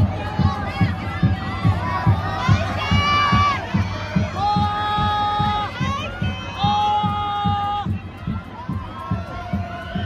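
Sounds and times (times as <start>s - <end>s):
steady drumbeat: 0.0s - 10.0s.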